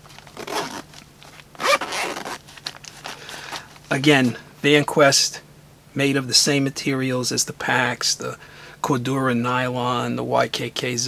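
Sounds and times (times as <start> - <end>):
pouch handling noise: 0.0 - 3.9
rasping fabric and zipper: 0.3 - 0.9, 1.6 - 2.4.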